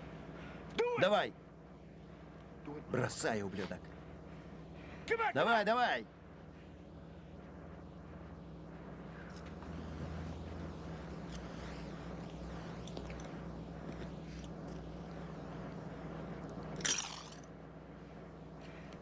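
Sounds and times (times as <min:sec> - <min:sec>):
low steady hum: 0:00.0 - 0:19.0
sharp crack: 0:16.8 - 0:17.5.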